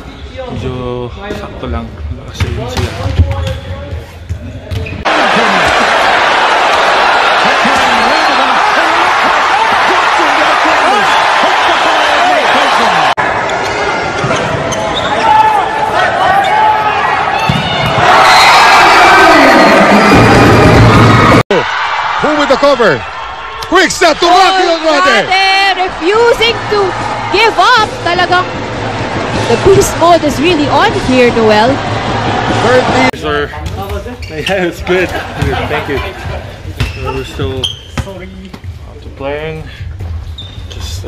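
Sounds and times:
players' voices: 0:00.2 - 0:20.4, 0:21.0 - 0:40.0
crowd shouting: 0:05.0 - 0:33.2.

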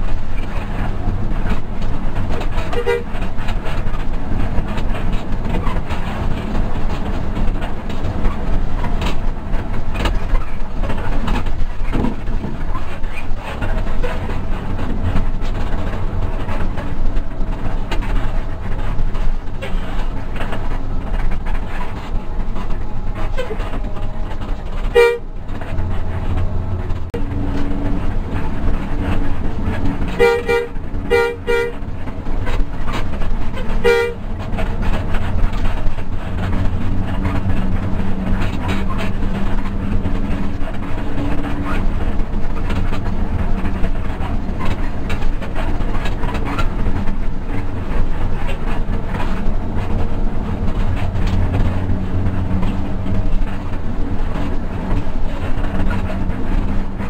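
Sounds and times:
diesel engine drone: 0:00.0 - 0:57.0
road noise: 0:00.0 - 0:57.0
horn blasts: 0:02.7 - 0:03.1, 0:24.8 - 0:25.4, 0:30.0 - 0:31.8, 0:33.6 - 0:34.4.

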